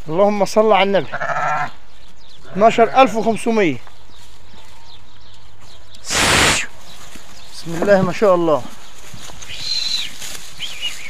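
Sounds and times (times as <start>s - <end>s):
outdoor background noise: 0.0s - 11.0s
small bird calling: 1.0s - 8.1s, 8.7s - 11.0s.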